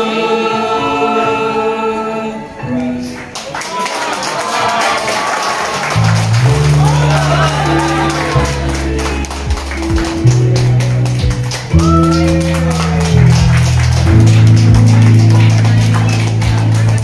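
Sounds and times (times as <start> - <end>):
instrumental music with low notes: 5.9 - 17.0.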